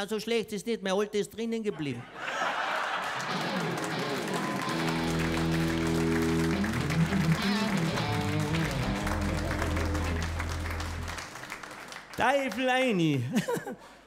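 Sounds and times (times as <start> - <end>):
audience laughing: 1.8 - 11.5, 13.2 - 13.9
audience applauding: 2.3 - 13.2
guitar chords and melody: 3.2 - 11.3
bass guitar line: 3.3 - 11.4.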